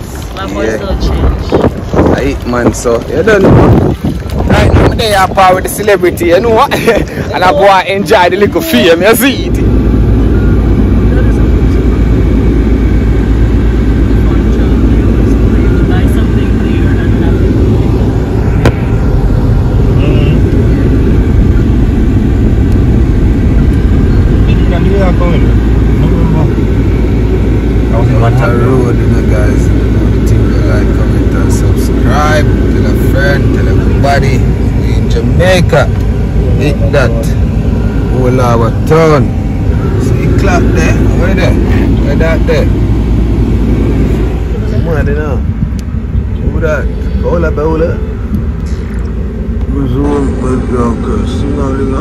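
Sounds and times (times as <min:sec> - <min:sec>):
road and engine rumble: 0:00.0 - 0:52.0
voices: 0:00.0 - 0:52.0.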